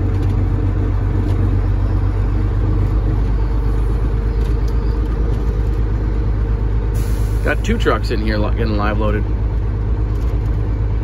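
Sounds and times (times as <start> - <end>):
diesel truck engine humming: 0.0 - 11.0.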